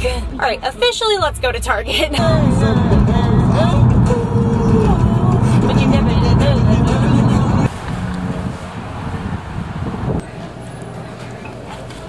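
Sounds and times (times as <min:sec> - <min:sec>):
car cabin hum: 0:02.2 - 0:10.3.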